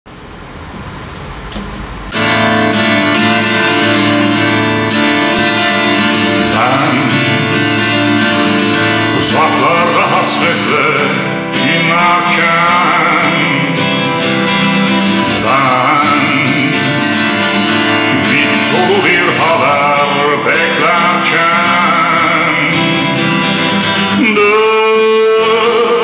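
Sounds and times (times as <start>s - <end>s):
faint rising hiss: 0.1s - 4.4s
acoustic guitar strumming: 0.5s - 26.0s.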